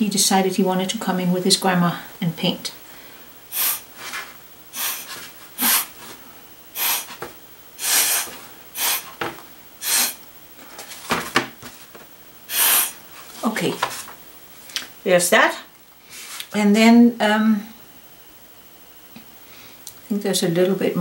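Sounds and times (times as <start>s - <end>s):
breath puffs through a straw: 3.5s - 3.9s, 4.8s - 6.0s, 6.8s - 7.2s, 7.8s - 9.1s, 9.8s - 10.2s, 12.5s - 13.0s.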